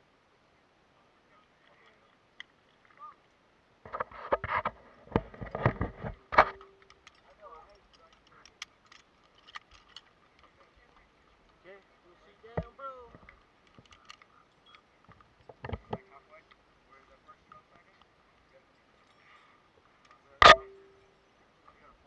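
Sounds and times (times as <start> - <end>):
faint scattered sounds: 0.0 - 22.0.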